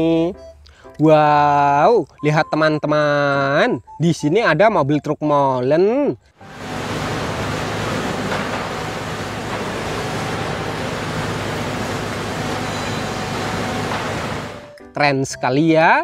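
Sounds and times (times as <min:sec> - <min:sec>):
concrete mixer truck running: 0:06.4 - 0:14.8.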